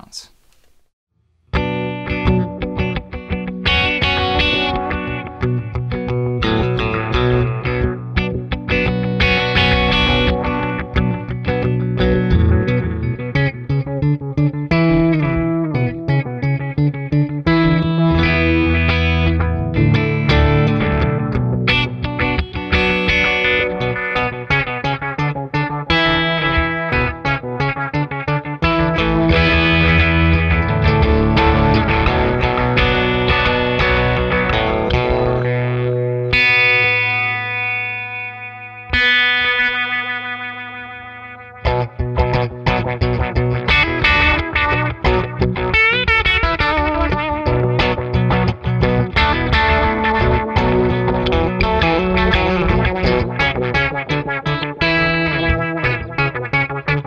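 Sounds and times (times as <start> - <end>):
electric guitar with sweeping delay: 1.6 - 57.0.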